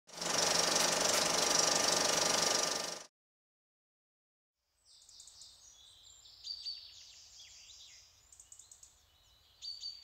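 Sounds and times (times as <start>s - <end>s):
fast mechanical clatter: 0.1s - 3.1s.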